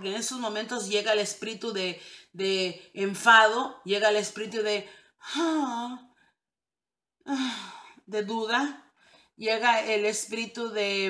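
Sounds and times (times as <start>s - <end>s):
woman speaking: 0.0s - 6.0s, 8.1s - 8.8s, 9.4s - 11.0s
woman sighing vocal sound: 7.3s - 8.0s.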